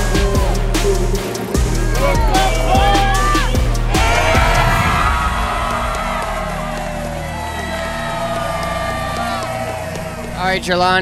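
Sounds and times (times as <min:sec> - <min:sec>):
music playing: 0:00.0 - 0:11.0
crowd cheering and whooping: 0:01.9 - 0:10.4.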